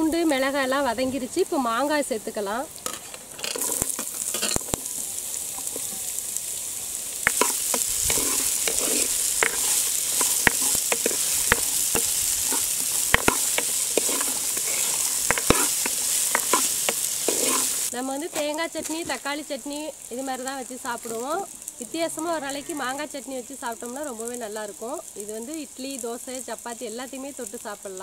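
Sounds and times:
mango frying in hot oil: 0.0s - 28.0s
wooden ladle scraping clay pot: 2.9s - 4.8s, 7.2s - 18.5s.

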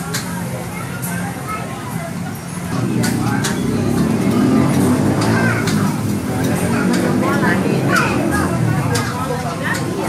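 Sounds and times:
voices: 0.0s - 10.0s
vehicle engine rumbling past: 2.1s - 10.0s.

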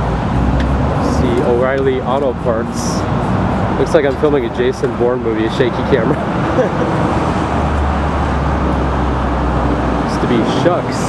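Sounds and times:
cars passing: 0.0s - 11.0s
low engine rumble: 0.0s - 11.0s.

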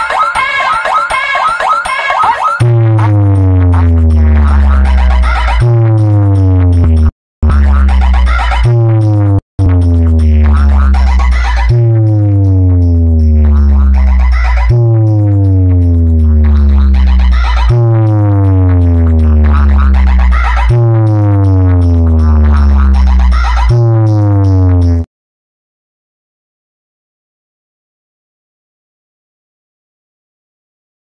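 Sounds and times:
electronic music through speakers: 0.0s - 25.1s
deep bass note sliding down: 2.6s - 25.1s.

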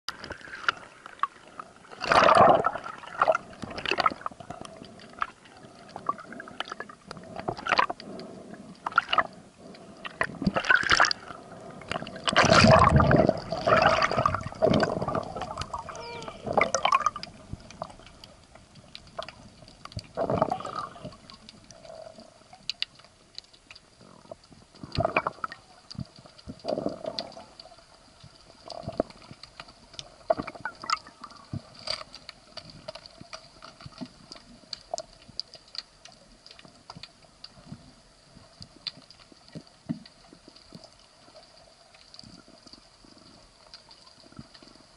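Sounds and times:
underwater gurgling and bubbling: 0.1s - 36.0s.

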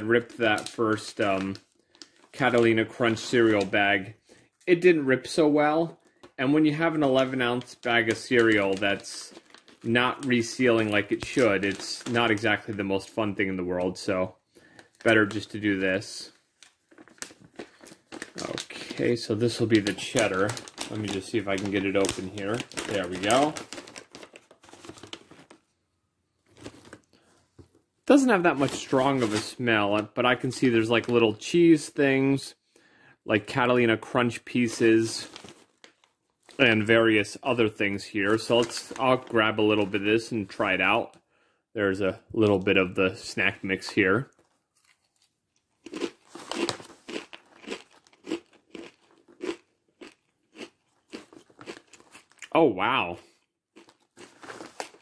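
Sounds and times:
plastic snack pouch crinkling: 0.0s - 4.0s, 4.7s - 25.8s, 26.4s - 27.3s, 28.1s - 31.5s, 33.4s - 40.9s, 42.4s - 52.6s, 53.7s - 55.0s
person chewing crunchy snack: 44.8s - 52.5s, 53.7s - 55.0s.

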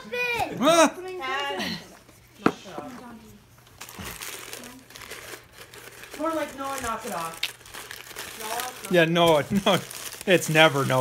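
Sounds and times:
wrapping paper crinkling: 3.7s - 11.0s.

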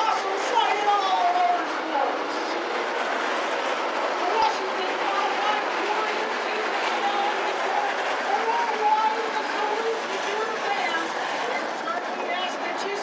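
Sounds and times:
people's voices: 0.0s - 13.0s
race car engines droning: 0.0s - 13.0s.

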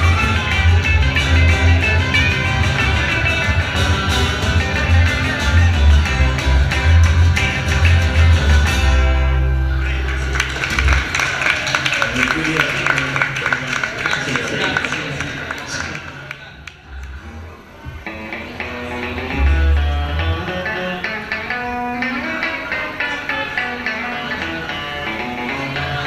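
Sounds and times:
rockabilly band playing: 0.0s - 15.7s, 17.2s - 26.0s
audience clapping: 6.7s - 8.5s, 9.8s - 17.3s
voices in room: 9.7s - 26.0s.

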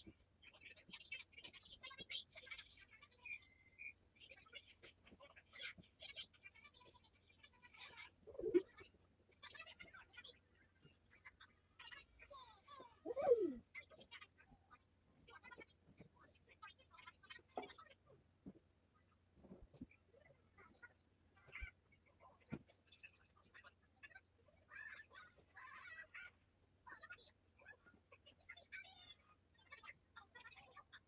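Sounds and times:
faint bird chirps: 3.1s - 4.5s, 7.8s - 8.9s, 13.0s - 13.7s
dove cooing: 8.3s - 8.7s, 13.1s - 13.6s.

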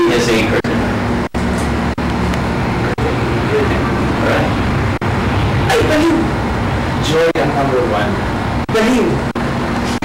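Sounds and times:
low hum and rumble: 0.0s - 10.0s.

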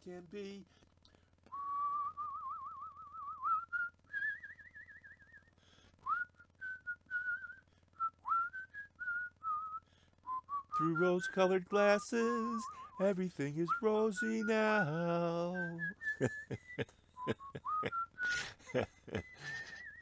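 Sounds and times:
person whistling a tune: 1.5s - 20.0s.

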